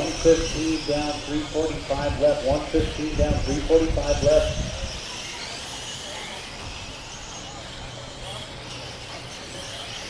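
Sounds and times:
electric rc cars whining: 0:00.0 - 0:10.0
steady outdoor hiss: 0:00.0 - 0:10.0.

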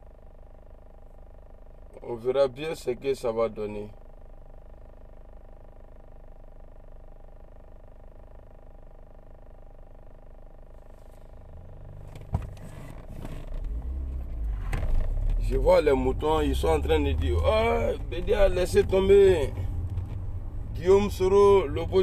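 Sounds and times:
car engine idling: 0:00.0 - 0:22.0
phone handling rumble: 0:10.9 - 0:15.6, 0:16.6 - 0:21.4.

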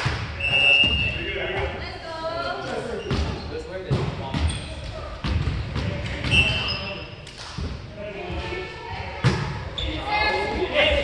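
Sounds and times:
echoing voices in a gymnasium: 0:00.0 - 0:11.0
volleyball bouncing on wooden floor: 0:03.1 - 0:06.6.

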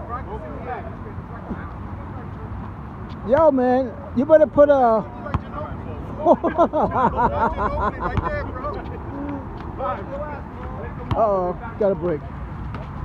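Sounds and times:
man laughing: 0:06.2 - 0:09.5.

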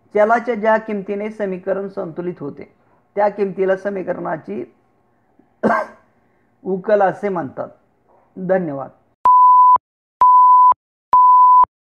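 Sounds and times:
electronic beep tone: 0:09.3 - 0:11.7.

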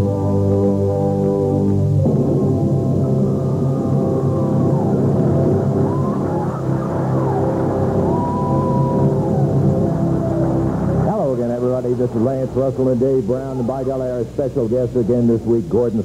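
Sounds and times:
theme music with long held notes: 0:00.0 - 0:14.7
crowd yells and whistles: 0:03.2 - 0:11.0.

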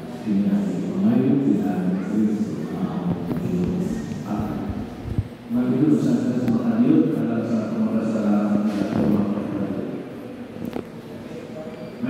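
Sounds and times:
murmuring room noise: 0:00.0 - 0:12.0
voice in large hall: 0:00.0 - 0:12.0.

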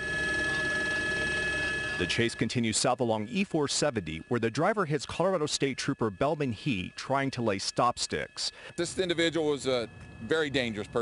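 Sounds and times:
helicopter cabin drone: 0:00.0 - 0:11.0
high whine: 0:00.0 - 0:11.0.

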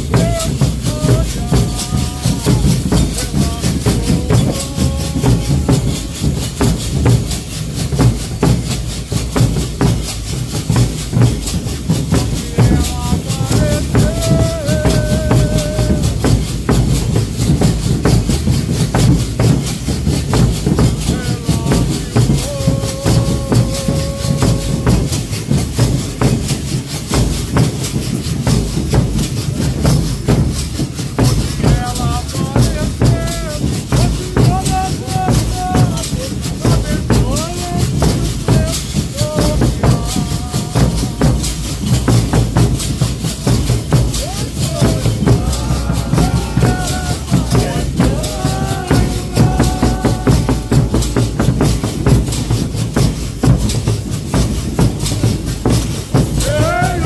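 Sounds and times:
lead singer singing verses: 0:00.0 - 0:07.0, 0:12.0 - 0:16.9, 0:20.7 - 0:25.4, 0:31.2 - 0:52.3, 0:56.2 - 0:57.0
drums beating dense rhythm: 0:00.0 - 0:57.0
rattling percussion: 0:00.0 - 0:57.0.

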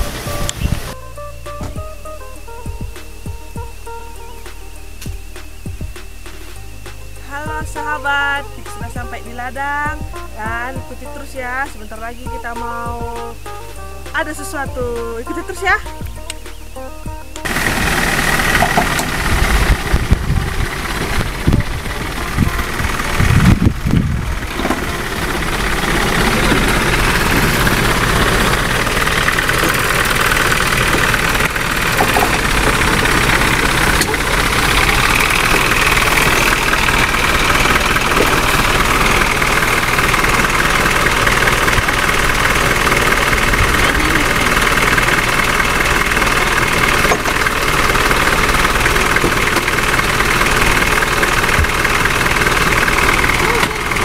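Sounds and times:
engine idling: 0:00.0 - 0:54.0
loud low thumps: 0:01.5 - 0:03.9, 0:05.0 - 0:07.8, 0:18.6 - 0:28.6.

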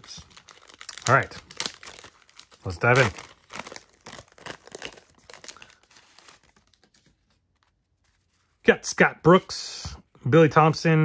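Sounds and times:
wax-paper wrapper crinkling and tearing: 0:00.0 - 0:08.6.

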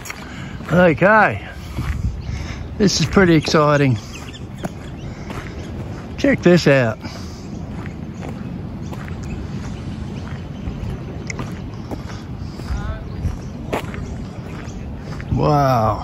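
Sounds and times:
wind on microphone: 0:00.0 - 0:16.0.

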